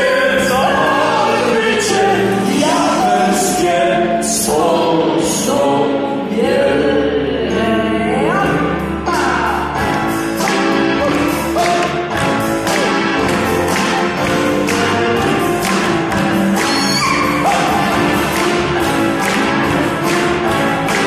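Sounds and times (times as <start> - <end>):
keyboard chords: 0.0 - 21.0
violin: 7.5 - 21.0
drum kit steady beat: 8.8 - 21.0.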